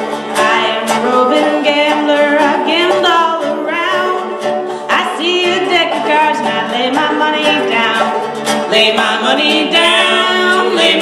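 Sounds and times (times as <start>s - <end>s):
acoustic guitar: 0.0s - 11.0s
person singing with vibrato: 0.0s - 11.0s
plucked banjo: 0.0s - 11.0s.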